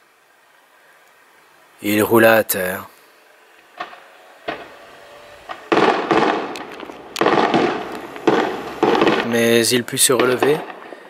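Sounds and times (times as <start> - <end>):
fireworks bursting and crackling: 3.4 - 11.0.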